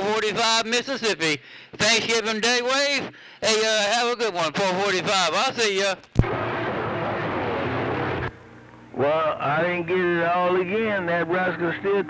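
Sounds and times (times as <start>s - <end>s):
garbled distant radio transmission: 4.8s - 12.0s
low steady hum: 6.2s - 12.0s.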